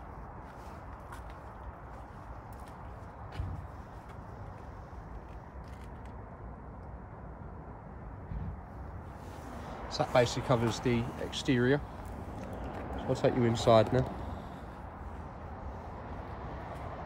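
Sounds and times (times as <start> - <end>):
low outdoor background noise: 0.0 - 17.0.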